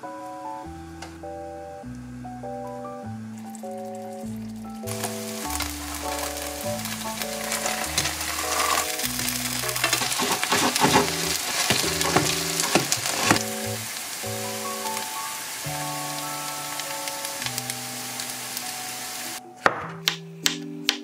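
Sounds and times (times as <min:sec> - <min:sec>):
background music: 0:00.0 - 0:21.0
oil sizzling in a pan: 0:03.4 - 0:19.4.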